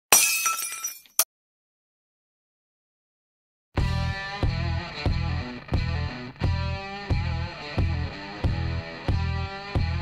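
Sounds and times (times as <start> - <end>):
glass shattering: 0.1 - 1.3.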